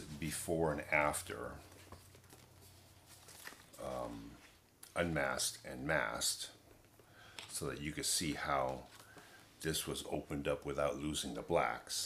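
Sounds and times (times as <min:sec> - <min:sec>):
man's voice: 0:00.0 - 0:01.6.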